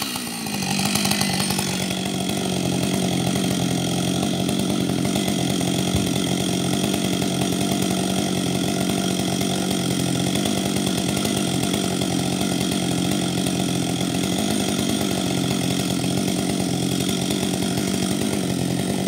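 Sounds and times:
chainsaw idling: 0.0s - 19.0s.

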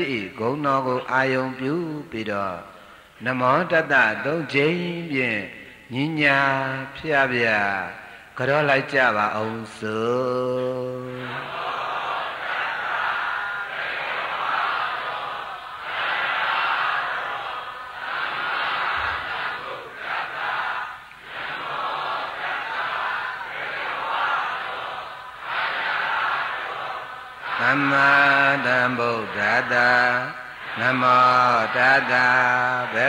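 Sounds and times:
congregation chanting in unison: 0.0s - 33.0s.

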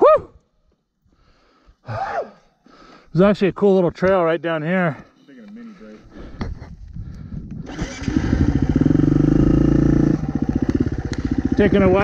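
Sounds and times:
dirt bike engine running: 7.7s - 12.0s.

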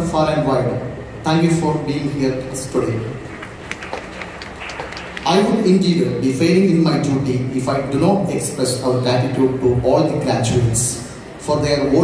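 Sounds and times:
large hall crowd noise: 0.0s - 12.0s.

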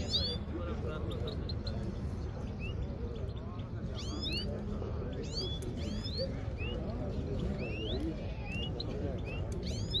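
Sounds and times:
finches calling: 0.0s - 10.0s
murmur of voices: 0.0s - 10.0s.

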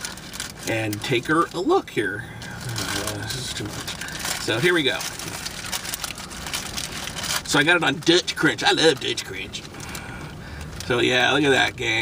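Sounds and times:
paper wrapper crinkling: 0.0s - 11.8s.

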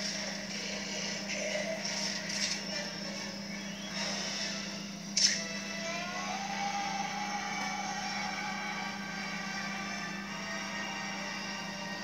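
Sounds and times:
film soundtrack through tv speakers: 0.0s - 12.0s.

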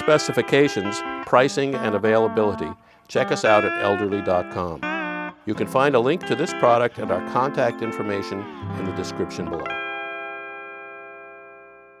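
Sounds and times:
lap steel guitar chord ringing: 0.0s - 12.0s.

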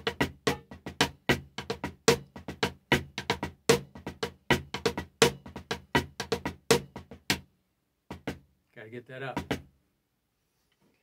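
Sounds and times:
drumsticks playing on a drum: 0.0s - 7.4s, 8.1s - 8.4s.

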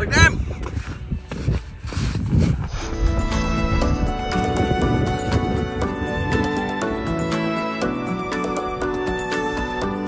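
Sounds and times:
background music: 0.0s - 10.0s
footsteps in snow: 0.5s - 5.3s.

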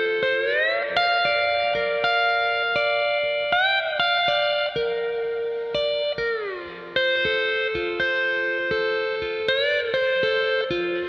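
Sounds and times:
guitar plucked notes: 0.0s - 11.0s.

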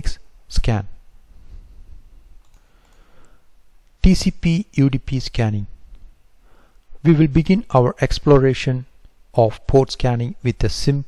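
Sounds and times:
faint clicks: 2.4s - 4.0s.

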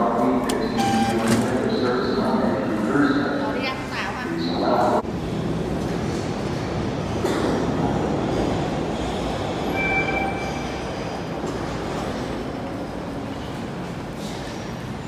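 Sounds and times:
subway train rumbling: 0.0s - 15.0s.

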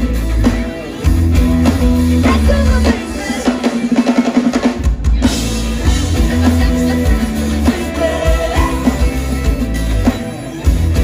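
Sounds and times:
heavy bass drum beat: 0.0s - 11.0s
live pop band playing: 0.0s - 11.0s.

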